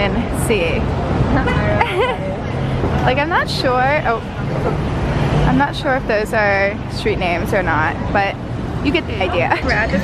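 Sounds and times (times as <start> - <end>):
passing cars rumble: 0.0 - 10.0.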